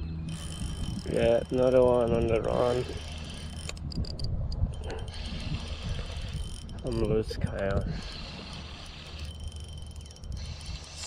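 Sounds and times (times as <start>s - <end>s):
fishing reel winding with clicks: 0.2s - 11.0s.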